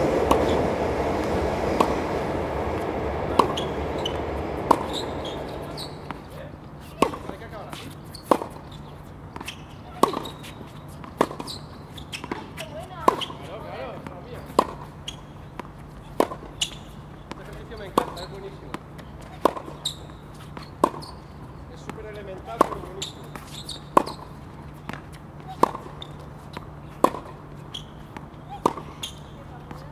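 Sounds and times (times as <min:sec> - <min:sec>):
tennis ball hits and bounces: 0:00.2 - 0:29.9.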